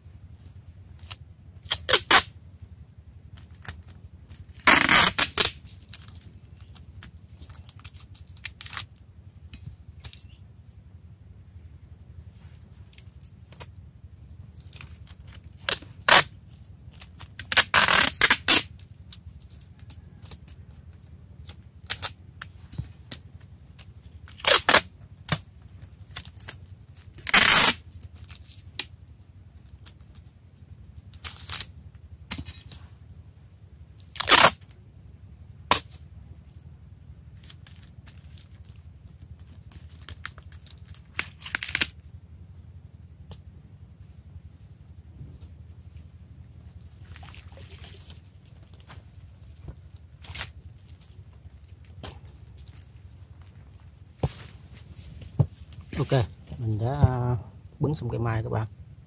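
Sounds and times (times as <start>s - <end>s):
plastic tape tearing off a roll: 0.9s - 2.7s, 3.3s - 9.0s, 12.9s - 13.8s, 14.6s - 29.0s, 31.1s - 31.8s, 34.0s - 34.8s, 35.7s - 36.0s, 37.4s - 42.0s, 47.0s - 53.6s.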